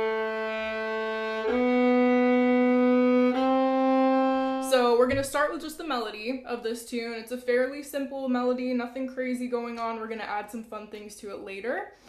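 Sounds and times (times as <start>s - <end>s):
solo violin playing a scale: 0.0s - 4.9s.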